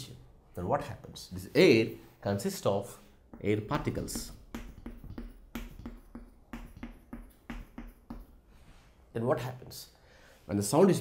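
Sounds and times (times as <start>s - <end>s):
chalk tapping on chalkboard: 3.2s - 8.5s.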